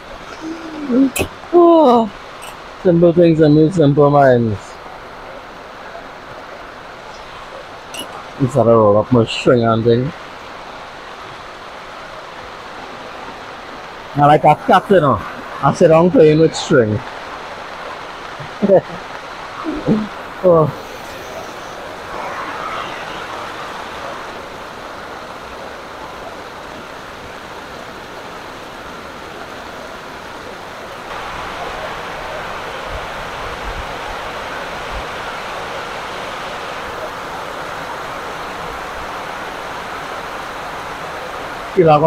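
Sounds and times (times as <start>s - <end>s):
heavy rain falling: 0.0s - 42.0s.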